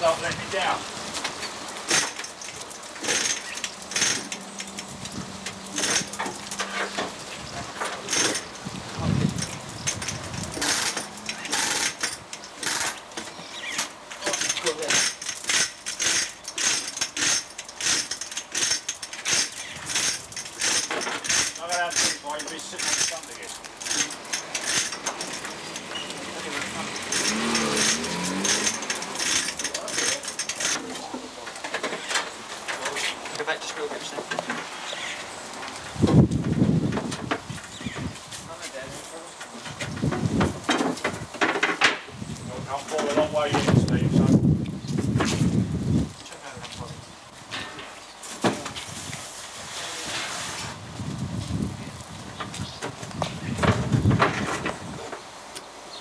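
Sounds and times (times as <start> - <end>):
metallic clinks and knocks: 14.2 - 31.0.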